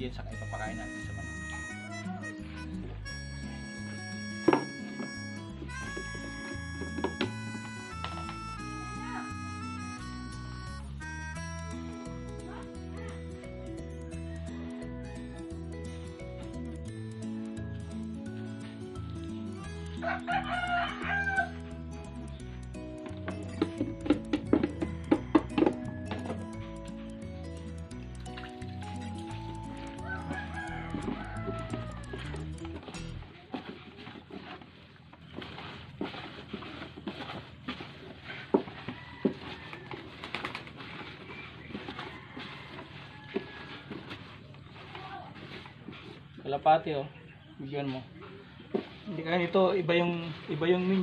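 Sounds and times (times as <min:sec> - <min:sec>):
background music: 0:00.0 - 0:33.3
hands mixing feed in bucket: 0:02.4 - 0:09.3, 0:28.1 - 0:46.6, 0:48.7 - 0:51.0
rooster crowing: 0:20.0 - 0:21.6, 0:29.9 - 0:32.6, 0:38.6 - 0:40.5, 0:41.3 - 0:44.4.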